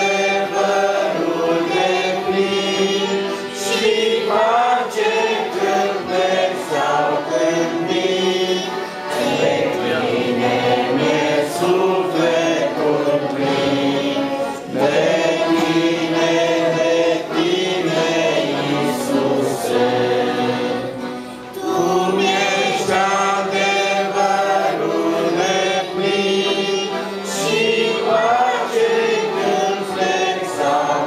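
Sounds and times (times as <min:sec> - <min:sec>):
group singing in harmony: 0:00.0 - 0:31.0.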